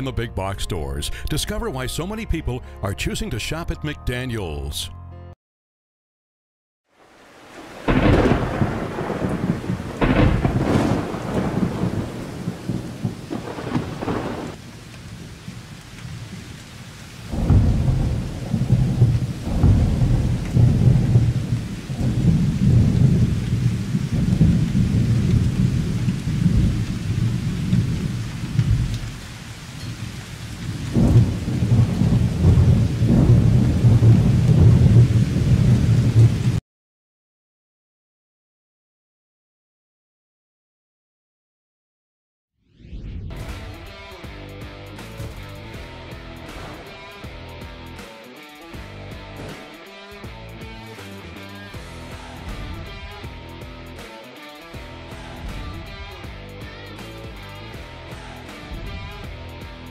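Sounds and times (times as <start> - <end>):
steady rain: 6.9 - 36.6, 51.8 - 54.0, 54.7 - 59.9
rolling thunder: 7.5 - 36.6, 45.3 - 47.3, 52.3 - 53.4, 55.3 - 56.4, 58.1 - 59.9
sharp thunderclaps: 7.6 - 16.6, 17.2 - 29.4, 30.0 - 36.6, 45.2 - 47.3, 52.3 - 53.4, 55.3 - 56.4, 58.2 - 59.9.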